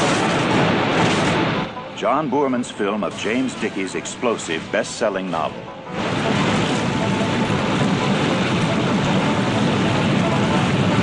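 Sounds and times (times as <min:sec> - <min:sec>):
loud steady rushing noise: 0:00.0 - 0:11.0.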